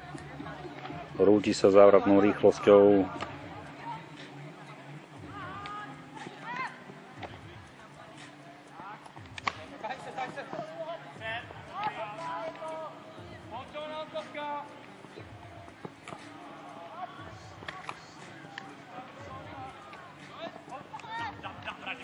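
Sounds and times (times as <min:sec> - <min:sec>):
people talking and calling out: 0:00.0 - 0:22.0.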